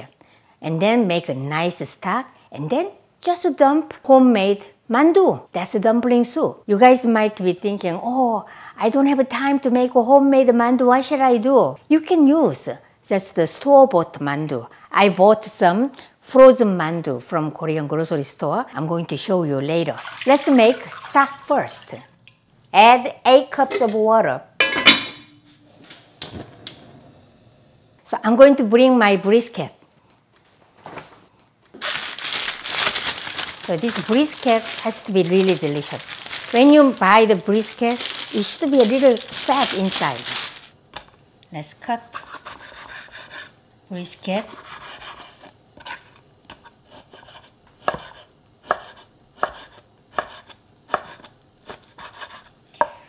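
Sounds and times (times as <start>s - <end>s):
gas stove igniter clicking: 26.2s - 26.9s
knife cutting meat on wooden board: 44.5s - 52.5s.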